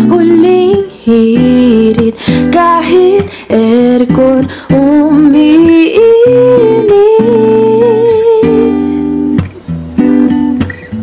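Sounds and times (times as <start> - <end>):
strummed guitar chords: 0.0 - 11.0.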